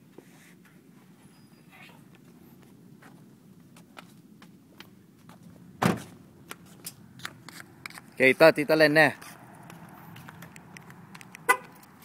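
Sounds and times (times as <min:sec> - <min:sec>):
car horn chirp: 0:11.5 - 0:11.7.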